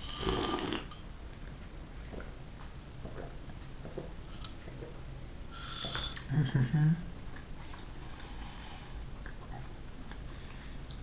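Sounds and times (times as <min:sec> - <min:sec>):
person slurping a drink: 0:00.0 - 0:01.0, 0:05.6 - 0:06.3.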